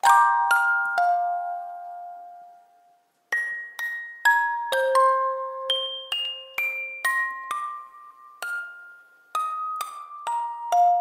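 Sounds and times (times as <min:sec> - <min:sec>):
glockenspiel note ringing: 0:00.0 - 0:11.0.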